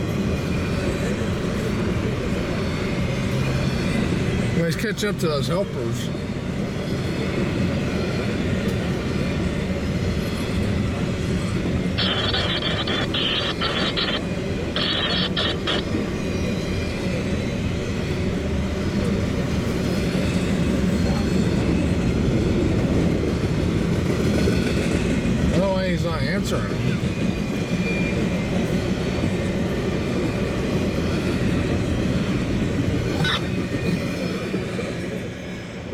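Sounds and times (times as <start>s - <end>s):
freight train wheels rumbling: 0.0s - 35.9s.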